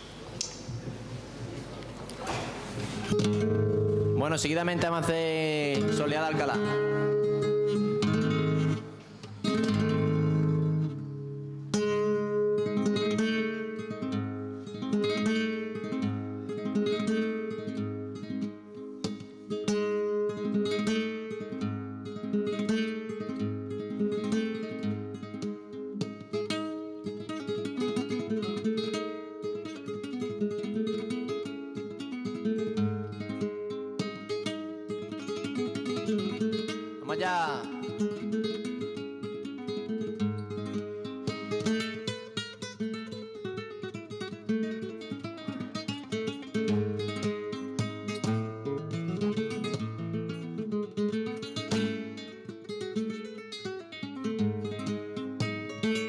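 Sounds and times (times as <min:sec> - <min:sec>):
flamenco guitar: 0:00.0 - 0:56.0.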